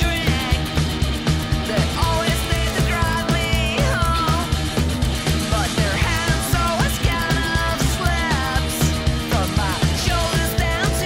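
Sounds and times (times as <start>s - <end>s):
drum kit: 0.0s - 11.0s
electric guitar: 0.0s - 11.0s
upright double bass: 0.0s - 11.0s.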